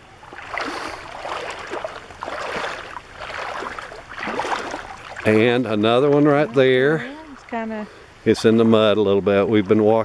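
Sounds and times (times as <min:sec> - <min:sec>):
feet wading through water: 0:00.0 - 0:08.9.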